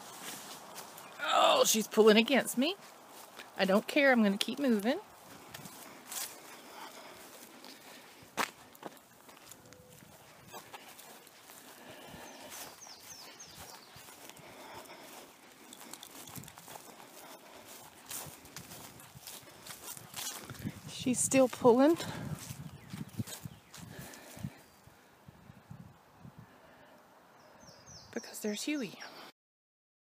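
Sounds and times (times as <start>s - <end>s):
footsteps on grass: 0.0s - 24.7s.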